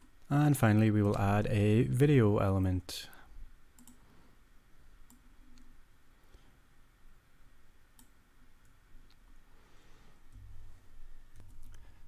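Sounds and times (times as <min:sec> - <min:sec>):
faint mouse clicks: 0:03.1 - 0:04.0, 0:05.0 - 0:05.8, 0:07.9 - 0:09.2.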